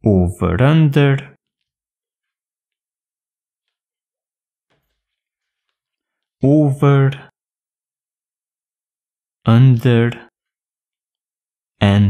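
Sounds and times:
man speaking: 0.0 - 1.4, 6.4 - 7.3, 9.5 - 10.3.

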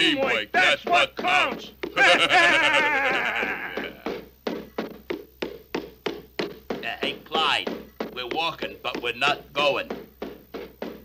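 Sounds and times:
cartoon dragon footsteps: 0.0 - 11.0.

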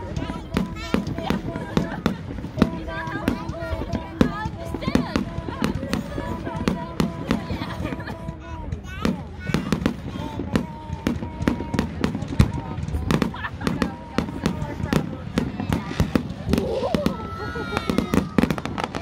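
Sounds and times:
fireworks bangs and crackles: 0.0 - 19.0.

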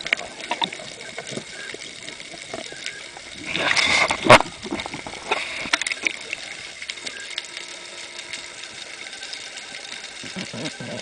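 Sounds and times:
underwater clicking and crackling: 0.0 - 11.0.

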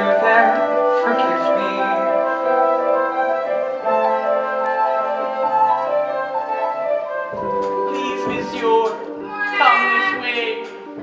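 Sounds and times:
orchestra holding sustained notes: 0.0 - 11.0
high voice calling out: 8.5 - 10.7.

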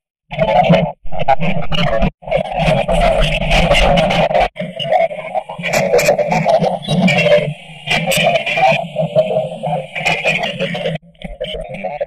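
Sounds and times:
distorted warped intro sounds: 0.3 - 12.0.

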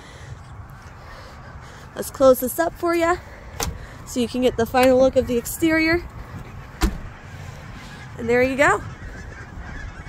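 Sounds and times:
car gate slamming shut: 6.8 - 7.1.

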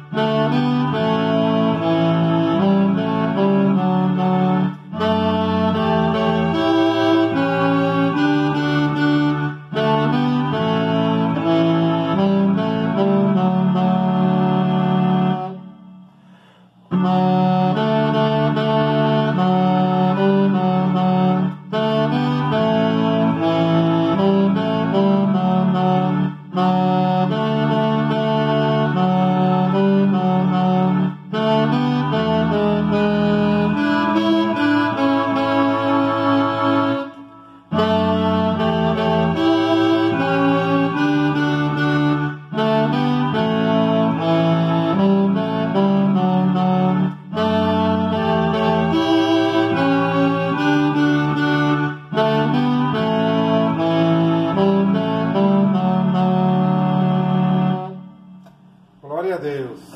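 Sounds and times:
alto saxophone playing a hymn: 0.0 - 59.7
player breathing: 16.0 - 16.9, 37.2 - 37.8.

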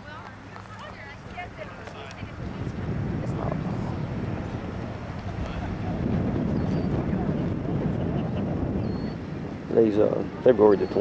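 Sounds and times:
crowd chatter: 0.0 - 11.0
wind rumbling on microphone: 0.0 - 11.0.

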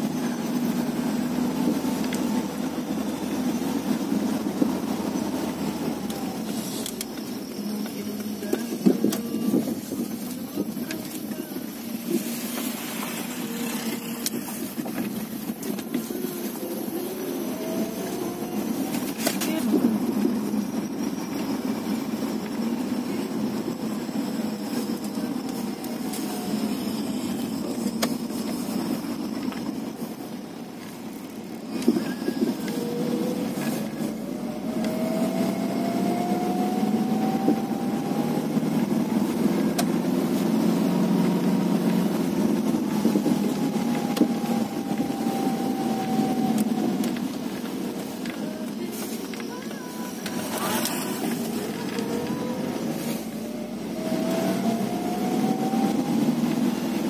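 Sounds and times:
car engine and road noise: 0.0 - 57.0
faint rising whine: 0.0 - 57.0.

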